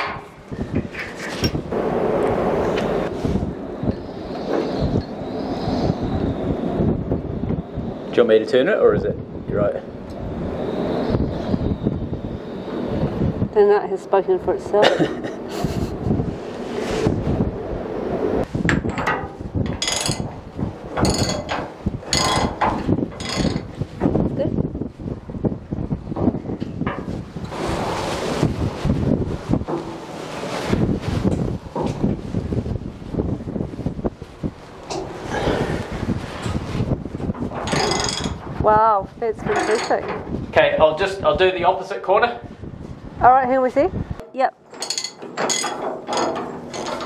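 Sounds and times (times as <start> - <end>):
wrench and nuts clattering: 18.8 - 20.4, 21.0 - 23.7, 37.5 - 38.4, 39.5 - 40.2, 44.7 - 47.0.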